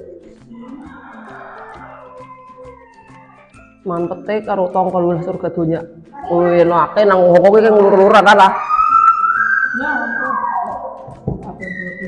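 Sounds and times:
high rising whistling tone: 0:08.5 - 0:12.0.

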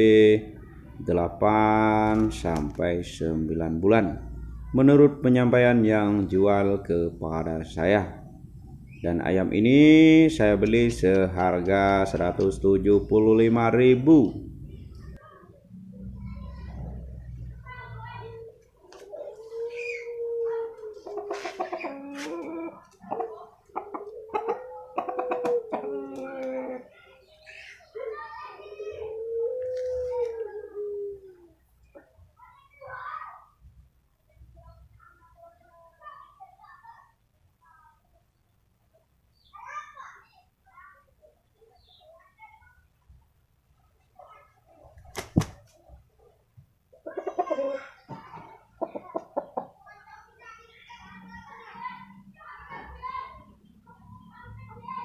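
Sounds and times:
rooster clucking: 0:18.9 - 0:26.9, 0:47.0 - 0:48.0, 0:48.7 - 0:49.8.

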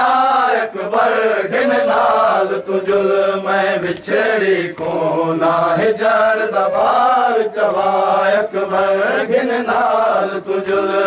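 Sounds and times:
men chanting a mourning lament: 0:00.0 - 0:11.0.

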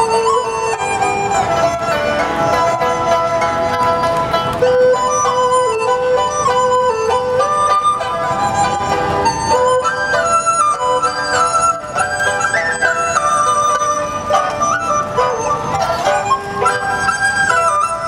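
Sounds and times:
bamboo flute melody: 0:00.0 - 0:18.0
chinese string ensemble: 0:00.0 - 0:18.0.

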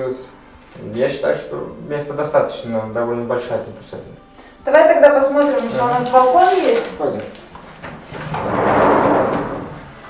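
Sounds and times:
glass door sliding open: 0:05.6 - 0:10.0.

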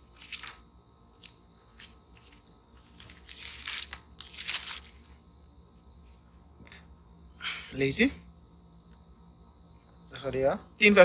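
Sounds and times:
book pages turning: 0:00.0 - 0:05.1.

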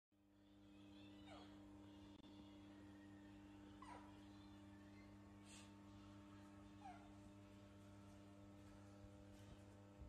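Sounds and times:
faint low hum: 0:00.2 - 0:10.0.

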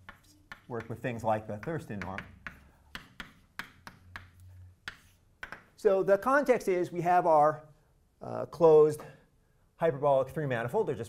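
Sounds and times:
chalk tapping on blackboard: 0:00.0 - 0:05.8.

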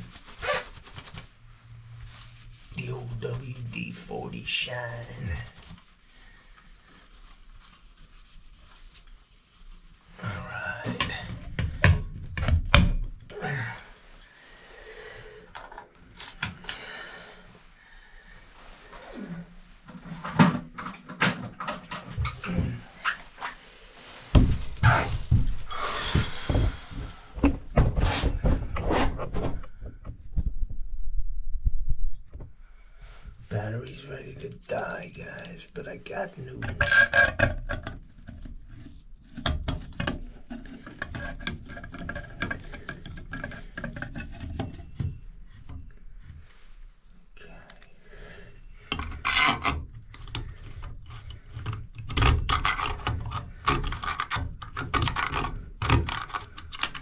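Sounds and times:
rubbing: 0:00.0 - 0:11.6.

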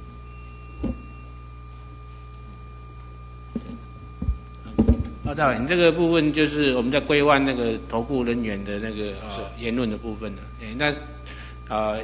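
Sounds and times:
low electrical hum: 0:00.0 - 0:12.0
thin high whine: 0:00.0 - 0:12.0.

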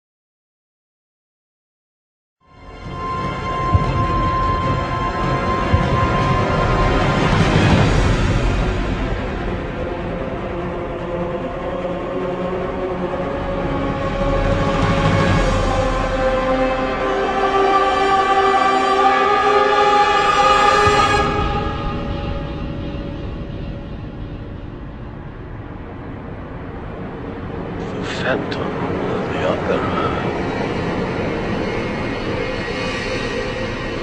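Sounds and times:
low rumbling drone: 0:02.5 - 0:34.0
choir singing long held notes: 0:02.6 - 0:34.0.

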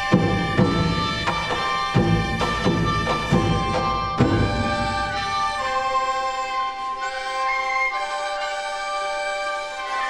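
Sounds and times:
traditional orchestra long held notes: 0:00.0 - 0:10.0.

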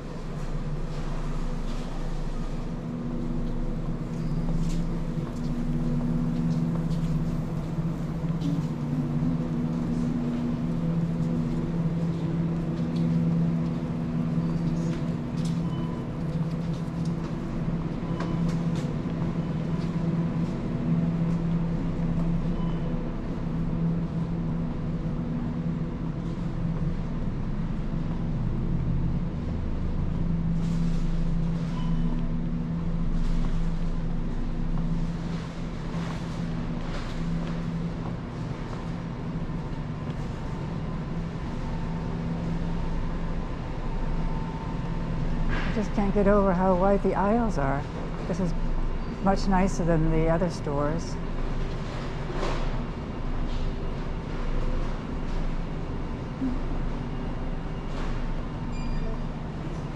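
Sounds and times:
low continuous rumble and hum: 0:00.0 - 0:59.9.

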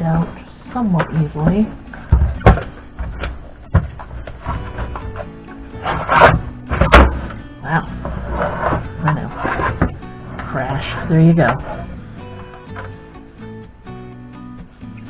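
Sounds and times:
background music: 0:00.0 - 0:15.0
metal chassis scraping and knocking: 0:01.4 - 0:07.4.

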